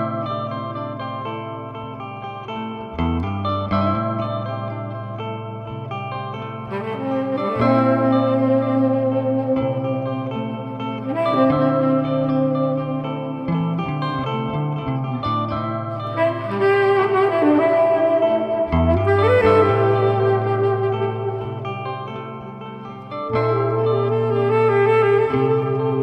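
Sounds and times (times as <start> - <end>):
electric guitar: 0.0 - 26.0
saxophone slow melody: 0.0 - 26.0.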